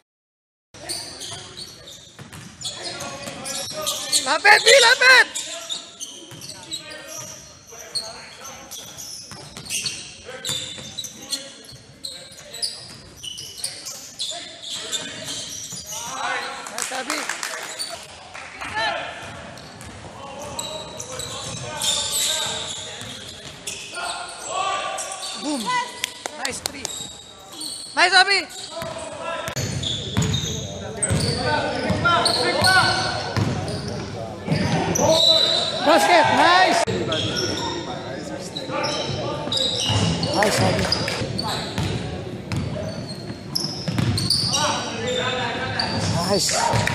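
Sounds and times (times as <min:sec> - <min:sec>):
sneakers squeaking: 0:00.8 - 0:46.9
players calling out: 0:02.6 - 0:11.6.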